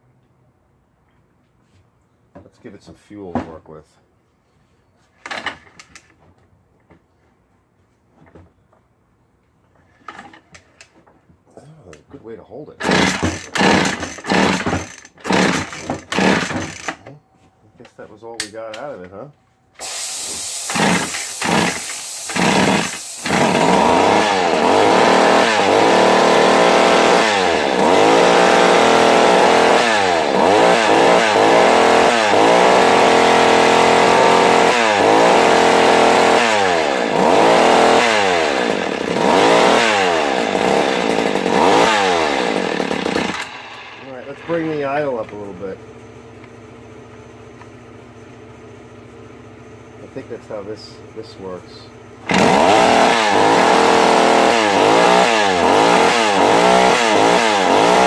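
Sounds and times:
chainsaw revving and idling: 12.8 - 17.0, 19.8 - 45.7, 52.2 - 58.0.

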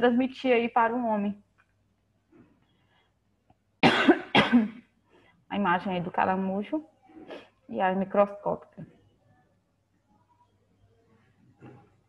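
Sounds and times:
woman coughing: 3.8 - 4.9.

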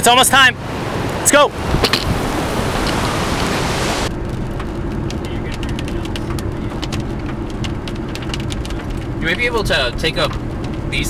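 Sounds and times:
car road rumble: 0.0 - 11.0
wind and rain rushing: 0.0 - 11.0
raindrops ticking on car: 1.1 - 11.0.

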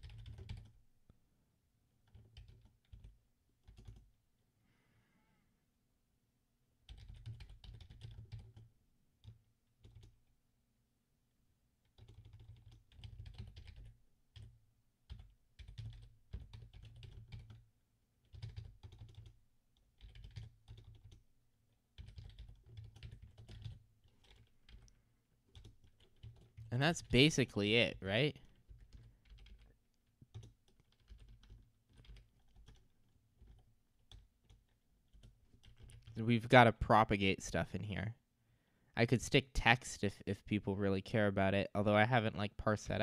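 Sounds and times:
typing on computer keyboard: 0.0 - 0.8, 2.0 - 4.1, 6.8 - 10.2, 11.8 - 17.6, 18.2 - 21.2, 21.9 - 27.1, 28.3 - 36.2.

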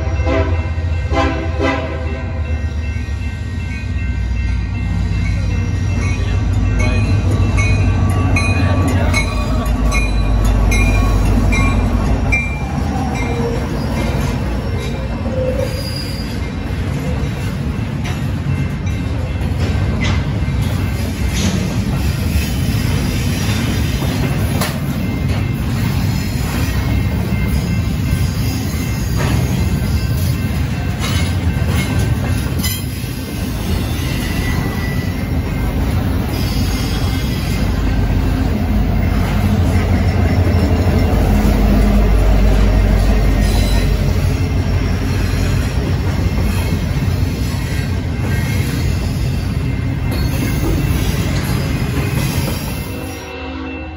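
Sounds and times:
train wheels rumbling on rail: 0.0 - 53.4
high wheel squeal: 12.4 - 17.4, 32.6 - 35.4, 36.2 - 37.9, 43.0 - 53.3.

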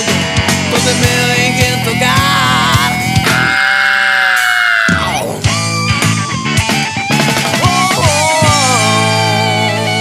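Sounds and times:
rock band music: 0.0 - 10.0.

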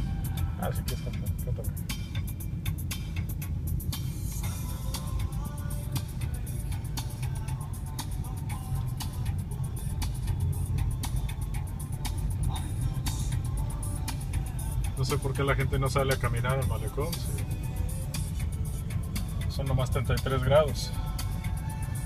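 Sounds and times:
car road and engine rumble: 0.0 - 22.0
music playing in car: 0.0 - 22.0.

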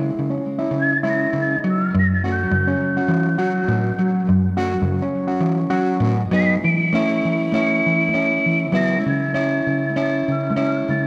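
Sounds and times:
fingerpicked electric guitar: 0.0 - 11.0
person whistling a melody: 0.8 - 4.4, 6.3 - 11.0.

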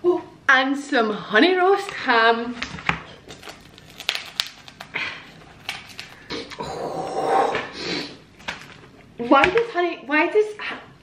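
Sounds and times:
bread roll crust crackling: 2.6 - 6.3.

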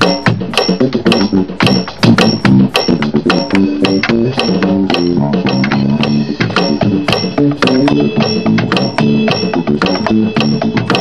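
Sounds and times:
electronic drum kit funk groove: 0.0 - 11.0
low bass line: 0.0 - 11.0.

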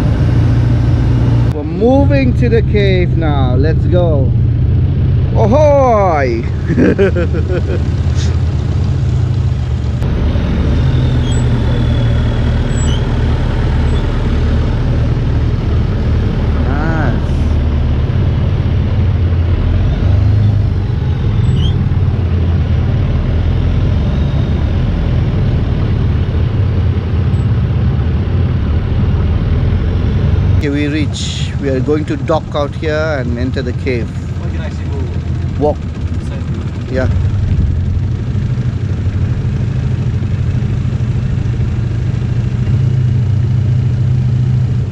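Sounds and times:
boat engine droning: 0.0 - 44.9.

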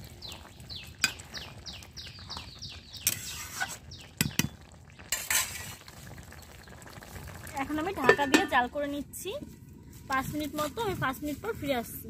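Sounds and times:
metal spatula scraping a pan: 3.0 - 3.9, 5.1 - 5.9.

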